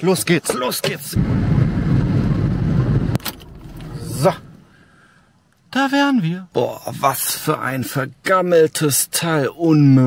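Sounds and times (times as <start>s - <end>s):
van engine and road rumble: 0.0s - 4.8s
faint hiss: 3.3s - 10.0s.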